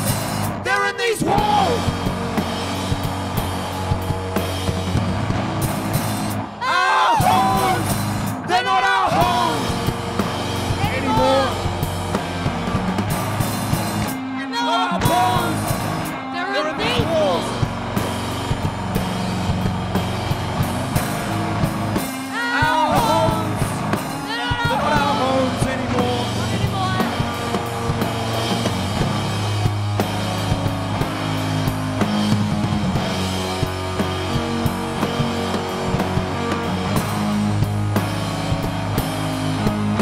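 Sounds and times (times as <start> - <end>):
bass guitar notes: 0.0 - 40.0
drum kit beat: 0.0 - 40.0
electric guitar: 0.0 - 40.0
live rock band playing: 0.0 - 40.0.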